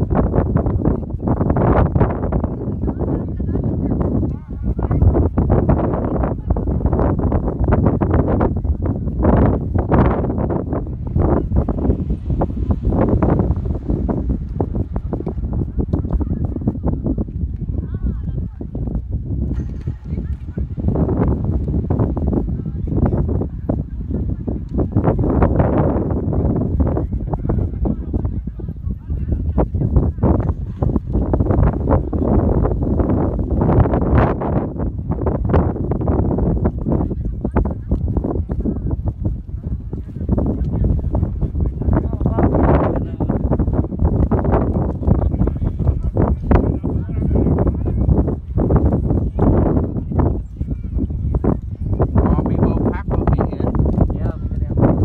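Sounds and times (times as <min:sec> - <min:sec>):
wind buffeting microphone: 0:00.0 - 0:55.0.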